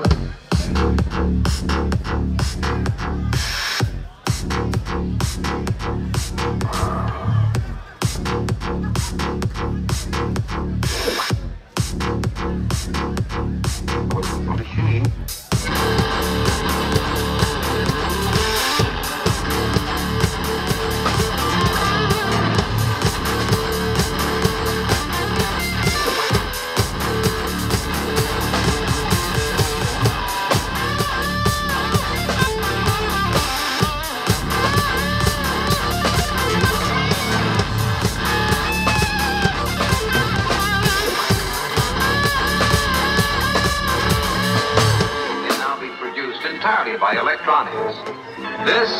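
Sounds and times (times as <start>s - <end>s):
drum kit: 0.0s - 45.8s
electronic backing: 0.0s - 48.9s
electric guitar: 15.6s - 46.0s.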